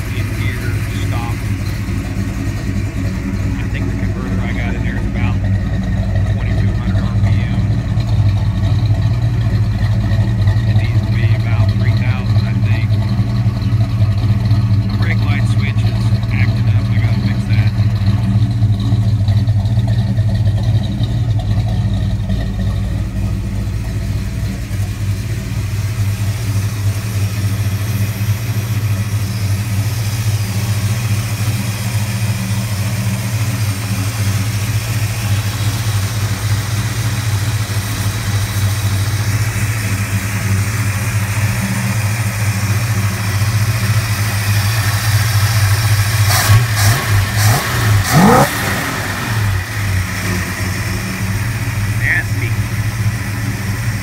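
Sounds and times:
engine idling through exhaust: 0.0s - 54.0s.

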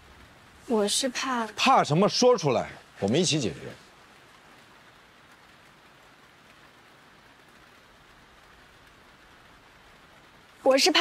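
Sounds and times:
faint steady rain hiss: 0.0s - 11.0s.

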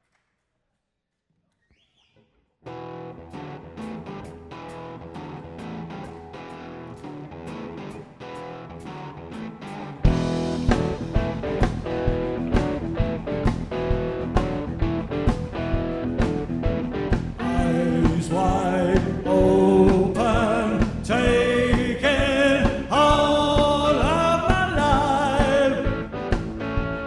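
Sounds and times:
electric guitar intro: 2.7s - 27.0s
rock band playing live: 2.7s - 27.0s
drums: 3.3s - 27.0s.

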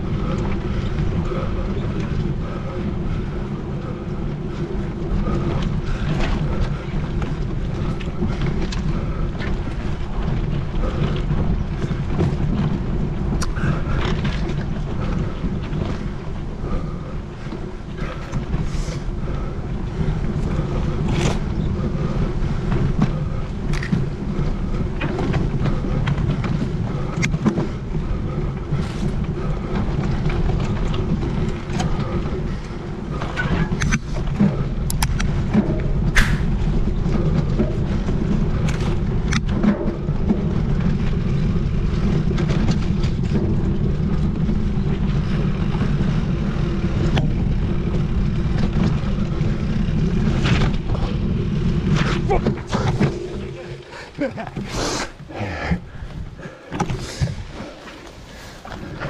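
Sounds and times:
bike tyres rumbling on dirt: 0.0s - 59.0s
bike clicks knocks and rattles: 17.4s - 53.4s.

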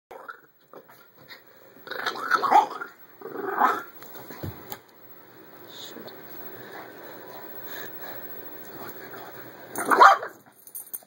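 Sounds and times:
small dogs growling and snarling: 0.1s - 4.0s.

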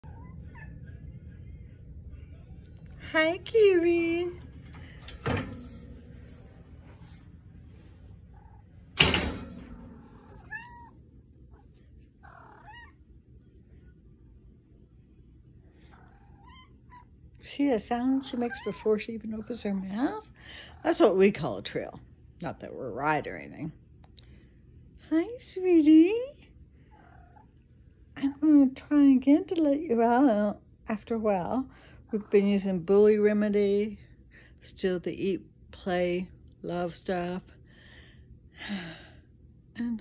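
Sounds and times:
cat trilling: 10.0s - 11.0s, 12.2s - 13.0s, 16.0s - 17.1s.

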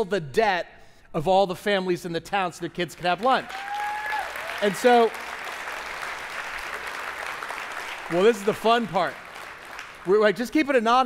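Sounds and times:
congregation applauding: 3.0s - 10.8s.

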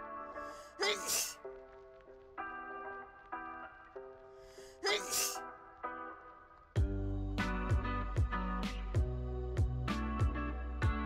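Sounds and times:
loud sneeze: 0.8s - 1.4s, 4.8s - 5.4s.

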